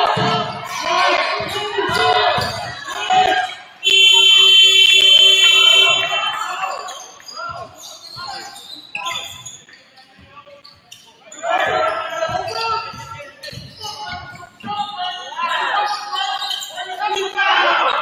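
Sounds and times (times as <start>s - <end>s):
voices shouting: 0.0s - 9.4s, 11.3s - 18.0s
scoreboard buzzer: 3.8s - 6.1s.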